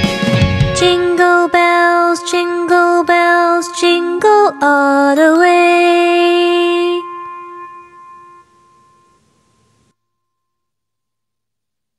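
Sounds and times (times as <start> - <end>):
backing music: 0.0 - 9.9.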